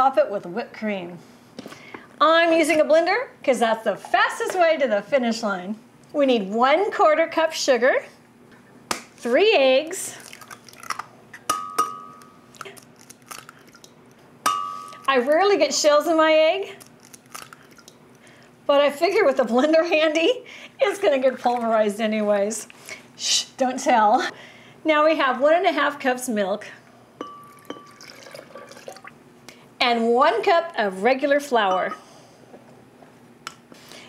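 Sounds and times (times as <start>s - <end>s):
glass clinks: 11.5s - 12.3s, 14.5s - 15.0s, 27.2s - 28.2s
glass ringing: 11.5s - 12.4s, 14.5s - 15.1s, 27.2s - 28.8s, 31.6s - 32.0s
milk pouring into a glass jar: 27.4s - 29.1s.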